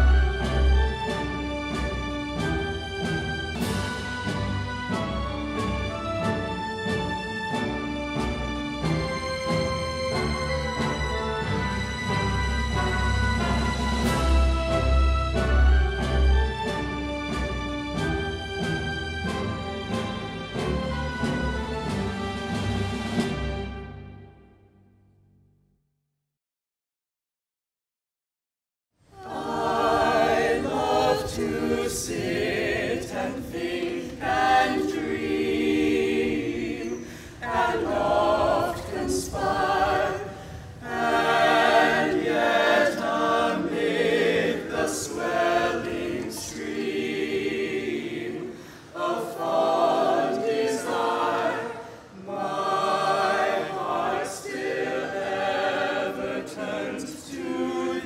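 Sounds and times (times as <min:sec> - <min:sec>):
choir singing: 0:00.0 - 0:24.0, 0:29.1 - 0:58.0.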